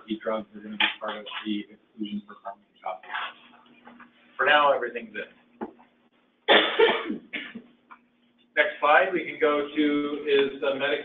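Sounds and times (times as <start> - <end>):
person coughing: 6.5 - 7.6.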